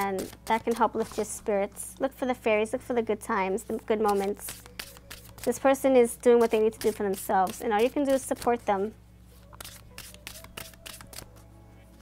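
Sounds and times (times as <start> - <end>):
faint music: 0.0 - 12.0
cards being shuffled: 4.0 - 5.6, 6.4 - 8.7, 9.4 - 11.5.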